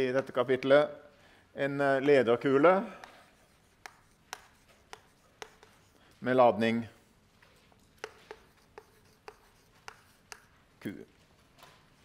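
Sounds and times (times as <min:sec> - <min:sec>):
chalk tapping and scraping: 0:02.0 - 0:10.7.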